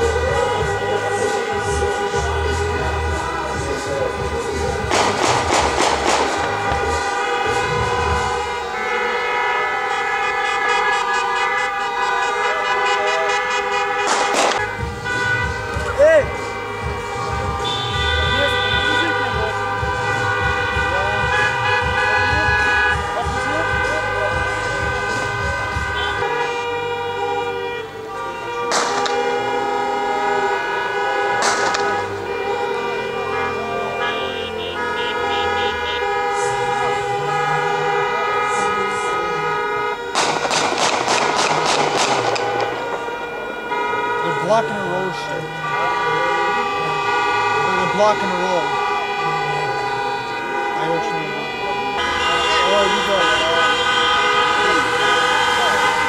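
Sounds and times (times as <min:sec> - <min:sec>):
car horns honking: 0:00.0 - 0:56.0.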